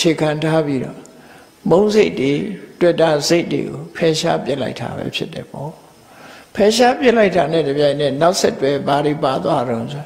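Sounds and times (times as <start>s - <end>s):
man talking: 0.0s - 5.8s, 6.5s - 10.0s.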